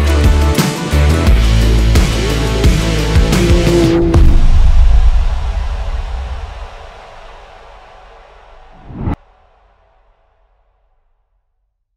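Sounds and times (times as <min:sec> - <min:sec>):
short whoosh: 0:08.7 - 0:09.2.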